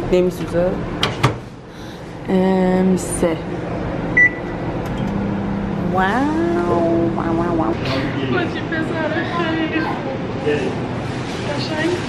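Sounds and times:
microwave oven humming: 0.0s - 11.9s.

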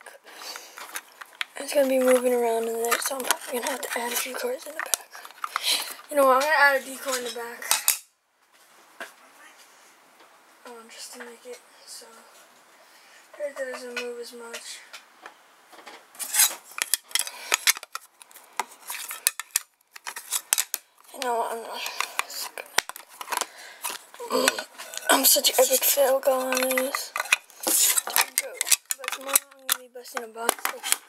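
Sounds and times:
handling trading cards: 0.3s - 8.0s, 16.2s - 31.0s.

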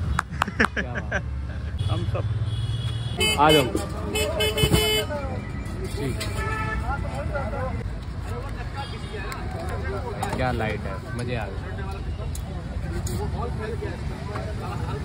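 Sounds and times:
street traffic rumbling: 0.0s - 15.0s
vehicle horn: 1.8s - 5.1s, 6.3s - 7.0s.

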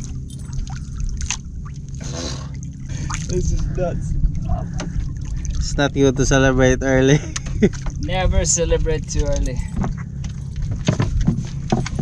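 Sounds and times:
steady low rumble: 0.0s - 12.0s
knocks against wooden boat: 9.7s - 12.0s.

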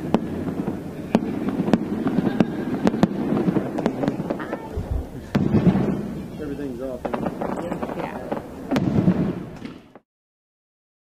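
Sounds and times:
crowd talking: 0.0s - 8.8s
sharp pops: 0.0s - 10.0s.

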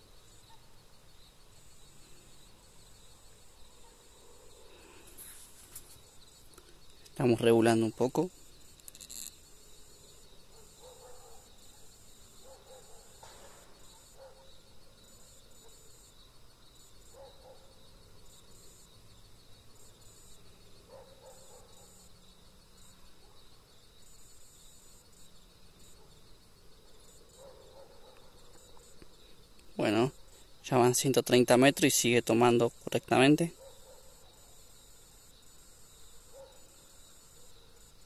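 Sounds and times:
insects trilling: 0.0s - 38.0s.

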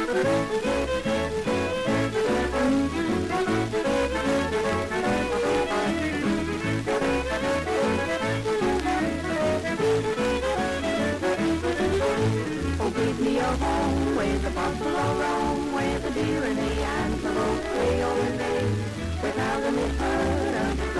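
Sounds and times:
western swing band playing: 0.0s - 20.9s.

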